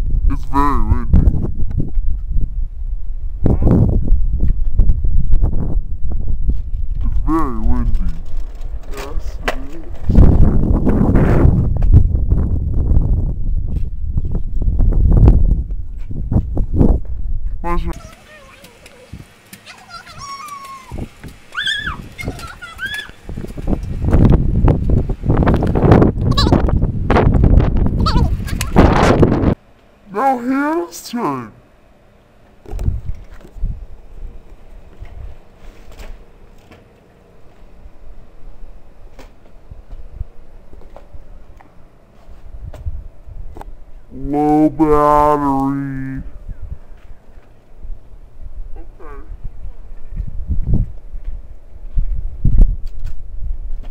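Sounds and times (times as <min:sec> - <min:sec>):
girls laughing and squealing: 0:19.7 - 0:23.3.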